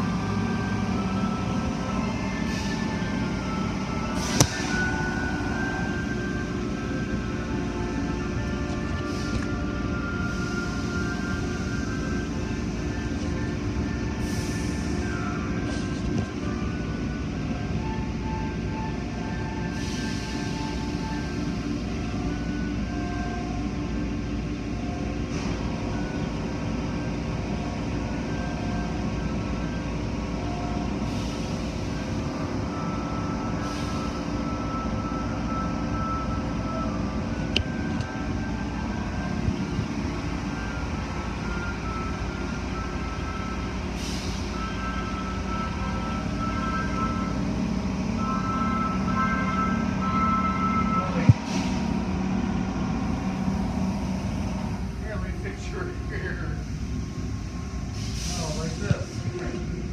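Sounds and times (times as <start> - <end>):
car wash pumps and spraying water: 52.9 - 59.8.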